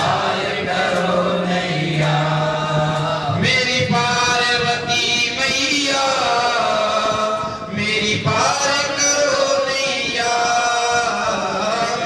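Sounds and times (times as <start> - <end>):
men chanting long held notes: 0.0 - 12.0.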